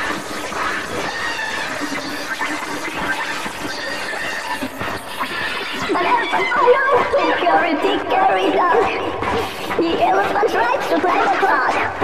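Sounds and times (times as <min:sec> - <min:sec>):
cartoon animal calls and effects: 0:00.0 - 0:07.6.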